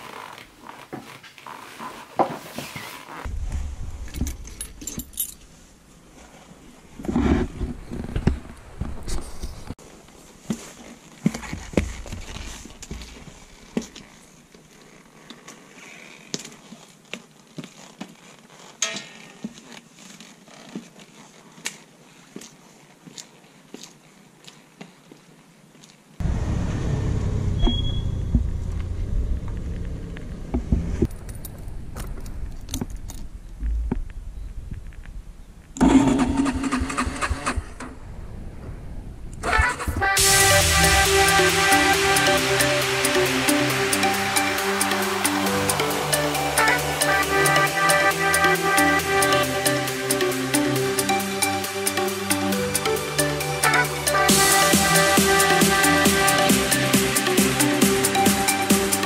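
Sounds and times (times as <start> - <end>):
low rumble: 3.3 - 5.7, 26.2 - 42.8
keys and carabiner jangling: 4.2 - 5.5.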